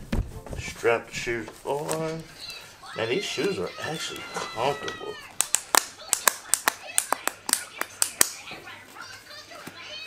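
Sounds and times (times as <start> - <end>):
faint voices: 0.4 - 10.0.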